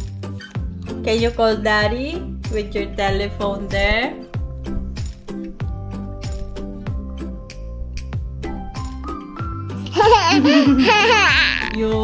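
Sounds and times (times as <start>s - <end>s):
background music: 0.0s - 12.0s
toddler laughing and squealing: 9.8s - 11.8s.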